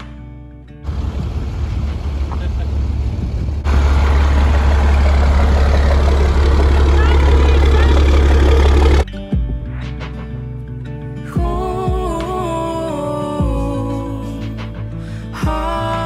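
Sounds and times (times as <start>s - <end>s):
music: 0.0s - 0.9s, 8.9s - 16.0s
vehicle rumble and wind noise: 0.8s - 9.0s
voices: 3.7s - 9.0s.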